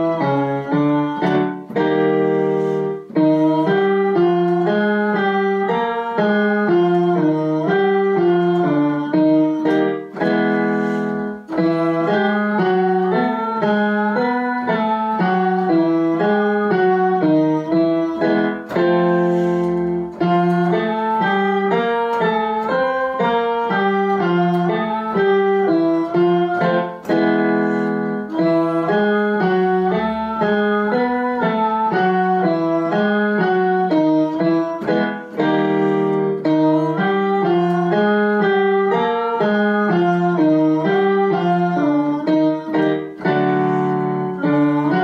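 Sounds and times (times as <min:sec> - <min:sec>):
digital piano notes: 0:00.0 - 0:45.0.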